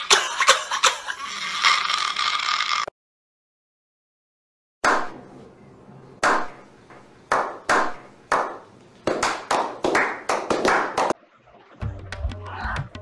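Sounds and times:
person hand clapping: 0:07.3 - 0:11.2.

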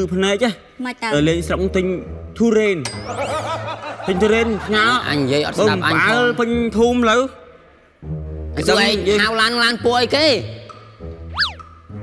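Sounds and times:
background music: 0:00.0 - 0:12.0
cartoon whistle pitch glide: 0:11.3 - 0:11.8.

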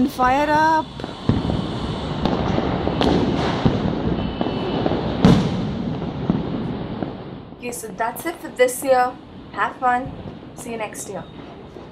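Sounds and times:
fireworks bangs: 0:00.0 - 0:11.9.

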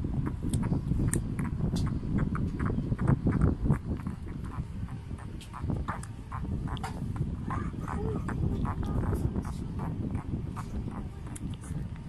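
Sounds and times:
low rumble of handling: 0:00.0 - 0:12.0
puppy noises: 0:00.2 - 0:12.0.

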